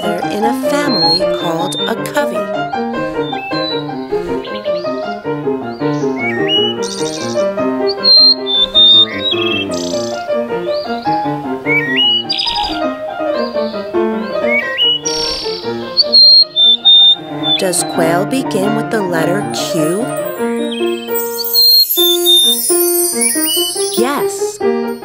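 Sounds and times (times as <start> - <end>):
quail calls: 0.0 - 5.1, 5.8 - 11.0, 11.6 - 18.2
classical keyboard music: 0.0 - 25.0.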